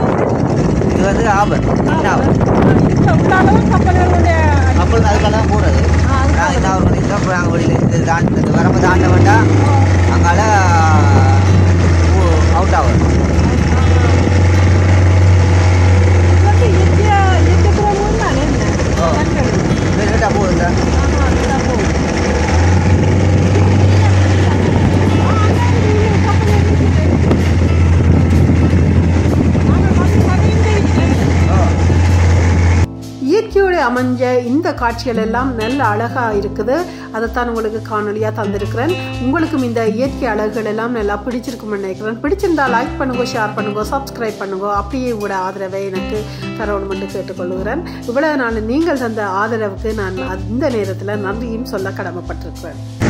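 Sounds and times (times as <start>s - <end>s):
outboard motor droning: 0.0s - 32.9s
wind noise: 0.0s - 32.9s.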